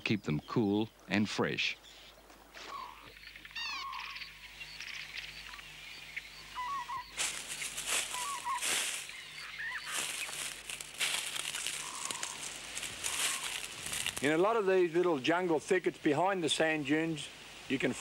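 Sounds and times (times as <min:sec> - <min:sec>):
birds chirping: 0:00.0 - 0:18.0
footsteps crunching through dry leaves: 0:06.6 - 0:14.6.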